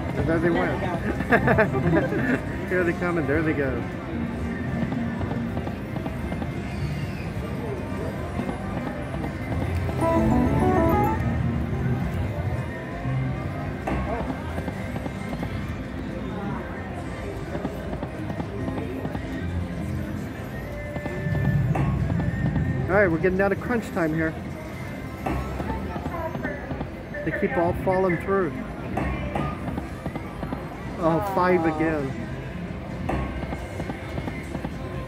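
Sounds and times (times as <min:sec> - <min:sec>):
casino background noise: 0:00.0 - 0:12.7, 0:13.3 - 0:35.0
slot machine reel-spin effects: 0:10.0 - 0:11.4
slot machine game music: 0:10.0 - 0:11.8.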